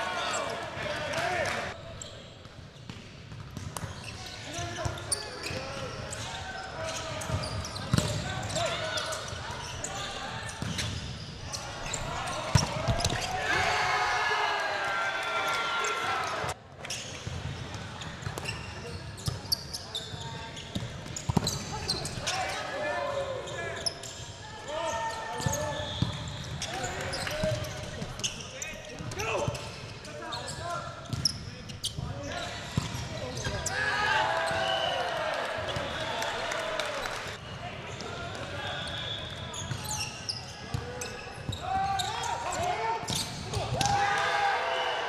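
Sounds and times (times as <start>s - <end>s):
players shouting: 11.9s - 16.6s, 33.5s - 37.3s.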